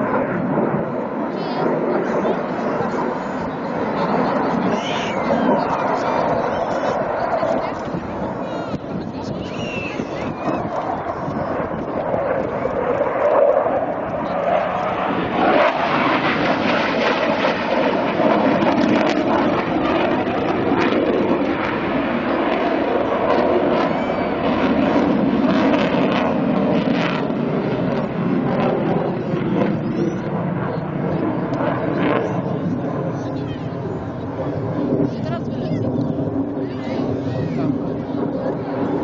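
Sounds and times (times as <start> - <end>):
jet flying overhead: 0.0 - 39.0.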